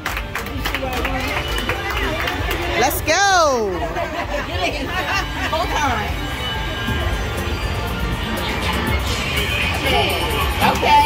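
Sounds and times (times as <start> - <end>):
crowd chatter: 0.0 - 11.0
electronic music: 0.0 - 11.0.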